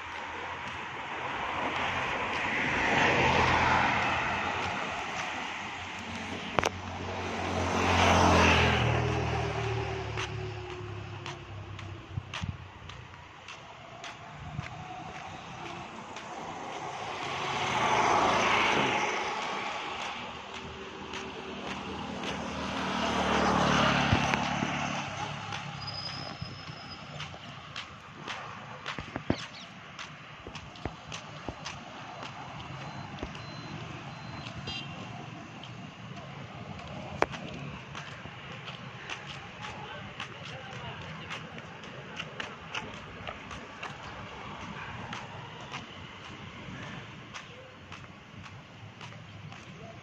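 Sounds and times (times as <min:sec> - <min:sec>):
vehicles passing by: 0:00.0 - 0:50.0.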